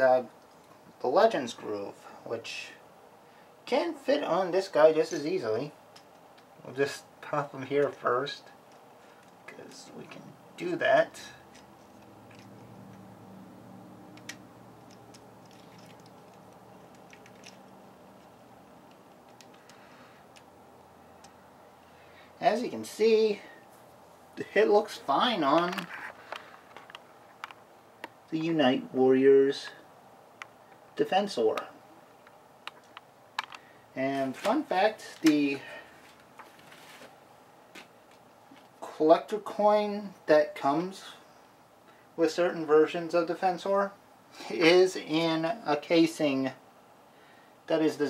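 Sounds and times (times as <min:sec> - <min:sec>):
faint low hum: 0:00.0 - 0:48.0.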